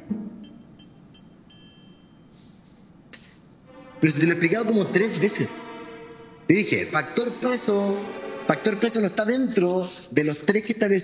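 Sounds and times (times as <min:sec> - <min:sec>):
faint high bell-like ticks: 0:00.4 - 0:02.7.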